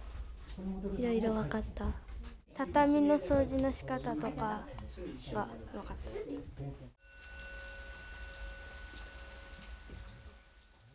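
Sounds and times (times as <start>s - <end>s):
faint ringing tone: 7.0s - 10.9s.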